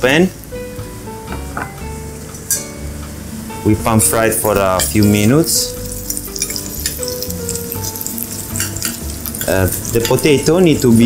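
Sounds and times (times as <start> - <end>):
background music: 0.0 - 11.0
vegetables sizzling in hot oil: 2.0 - 11.0.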